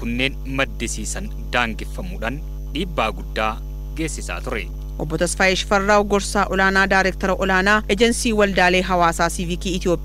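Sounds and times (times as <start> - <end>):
man speaking into microphones: 0.0 - 4.7
loud mains hum: 0.0 - 10.0.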